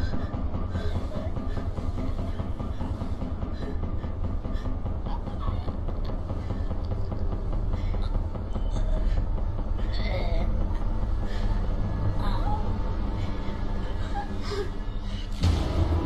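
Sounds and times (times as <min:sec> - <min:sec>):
low rumbling drone: 0:00.0 - 0:16.0.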